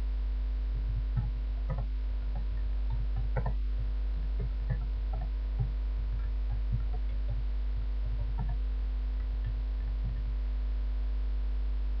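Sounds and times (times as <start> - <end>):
electrical mains hum: 0.0 - 12.0
faint low bumps: 0.0 - 12.0.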